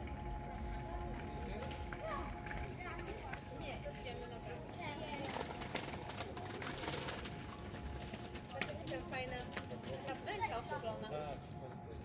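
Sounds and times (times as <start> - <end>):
distant people talking: 0.0 - 12.0.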